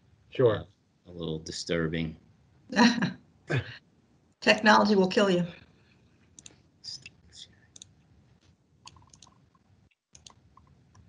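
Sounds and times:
computer mouse clicks: 6.4s - 6.6s, 7.7s - 7.9s, 8.9s - 9.4s, 10.1s - 11.0s.

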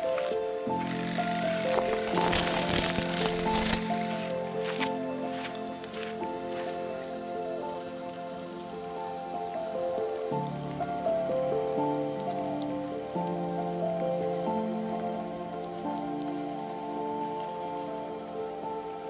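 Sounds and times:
faint steady patter: 0.0s - 19.0s
slow ambient music of held chords: 0.0s - 19.0s.

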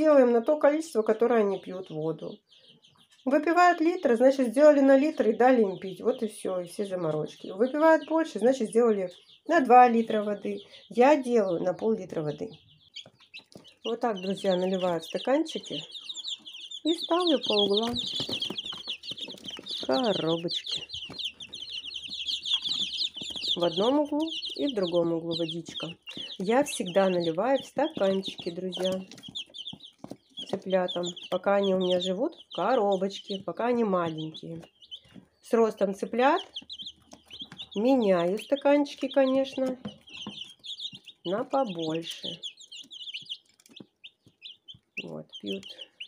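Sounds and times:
chicks peeping: 0.0s - 46.0s.

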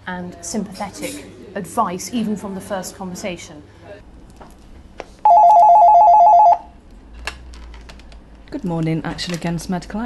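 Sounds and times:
warbling two-tone telephone ring: 5.3s - 6.7s.

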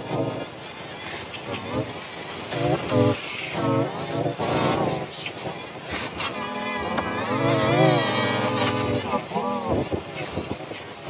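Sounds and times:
pitch-shifted wavering voice sounds: 1.5s - 9.9s.

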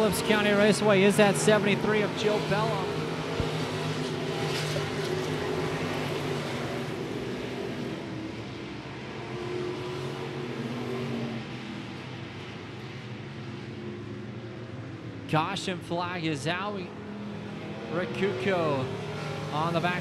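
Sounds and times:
stock car engines racing: 0.0s - 20.0s.

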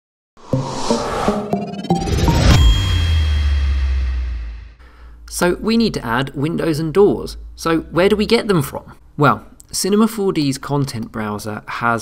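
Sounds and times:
swell of noise: 0.4s - 4.8s
bright chime hit: 1.3s - 4.8s
deep bass boom: 2.0s - 4.8s.

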